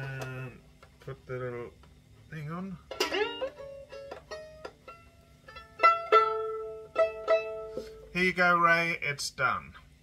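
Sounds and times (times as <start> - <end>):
violin strings plucked: 2.9 - 8.2.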